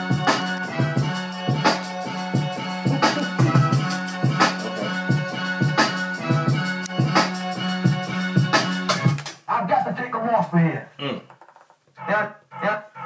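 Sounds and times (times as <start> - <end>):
electronic drum machine beat: 0.0 - 9.9.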